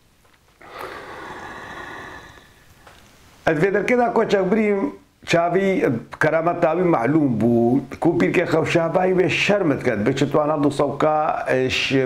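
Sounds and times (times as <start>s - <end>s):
man breathing out: 0.6s - 2.7s.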